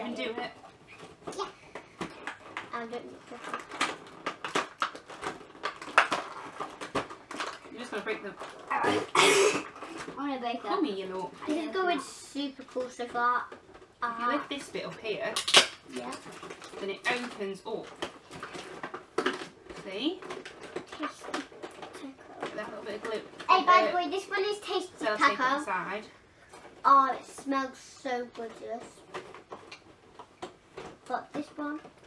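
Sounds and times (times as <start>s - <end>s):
plastic packaging crackling: 0.6s - 11.9s, 12.7s - 26.9s
toy packaging crackling open: 2.1s - 8.8s, 15.4s - 19.6s
plastic snapping: 15.4s - 19.6s.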